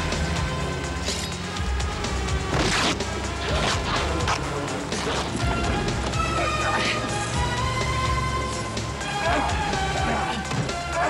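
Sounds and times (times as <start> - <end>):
action film music: 0.0 - 11.0.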